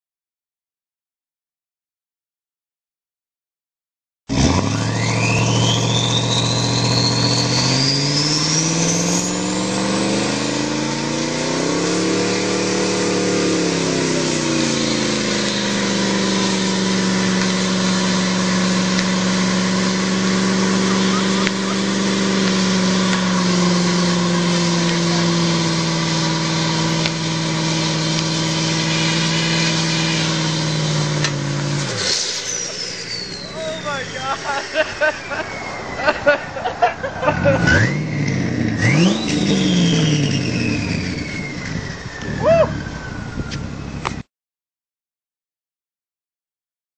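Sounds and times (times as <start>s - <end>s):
car engine revving: 4.3s - 44.2s
turbo whistle: 4.6s - 10.5s, 11.6s - 16.8s, 26.6s - 31.2s, 32.0s - 36.2s, 38.8s - 43.6s.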